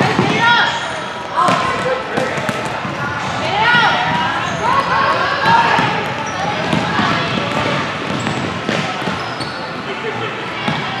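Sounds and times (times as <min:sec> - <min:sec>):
echoing voices: 0:00.0 - 0:11.0.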